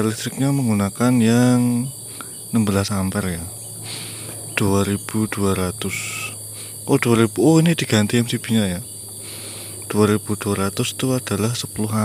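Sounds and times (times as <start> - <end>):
man's voice: 0.0 - 3.5, 4.5 - 8.9, 9.9 - 12.0
insect chorus chirring: 0.0 - 12.0.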